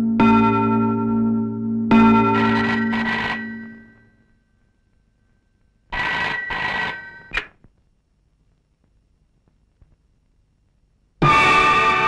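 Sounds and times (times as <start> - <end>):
telephone bell ringing: 1.9 - 4.2, 5.9 - 7.4
sharp clack: 6.0 - 7.7.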